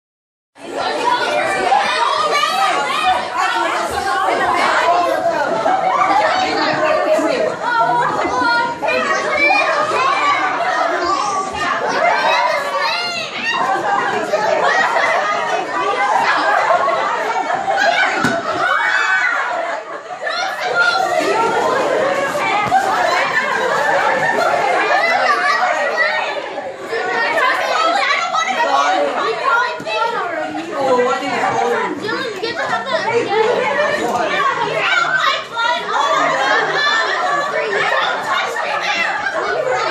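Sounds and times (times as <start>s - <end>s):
teenagers chattering and calling out: 0.6s - 39.9s.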